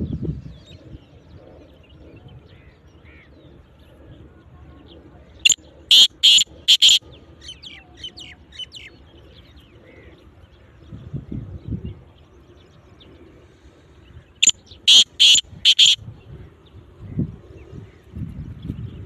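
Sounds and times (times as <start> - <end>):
faint small bird chirps: 5.4 - 7.0, 14.4 - 16.0
francolin calling: 5.9 - 7.0, 14.4 - 16.0.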